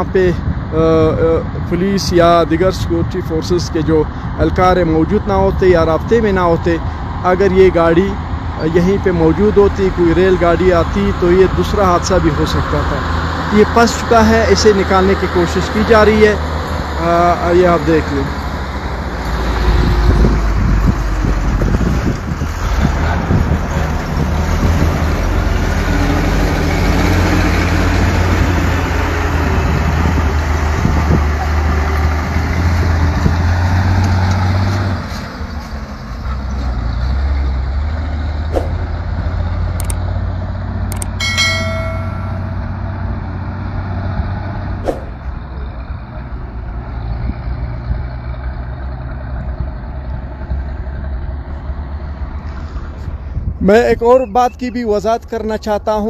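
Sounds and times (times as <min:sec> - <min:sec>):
diesel truck engine rumbling: 0:00.0 - 0:56.0
sharp clicks: 0:40.9 - 0:41.2
brief high tone: 0:41.2 - 0:42.9.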